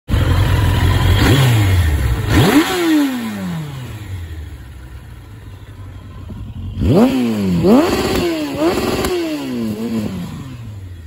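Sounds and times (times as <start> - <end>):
motorcycle engine idling and revving: 0.1 - 11.0.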